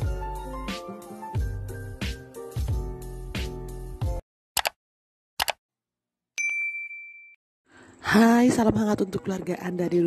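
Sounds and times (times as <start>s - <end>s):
click: 4.6s - 4.8s, 5.4s - 5.6s
bright notification ding: 6.4s - 7.4s.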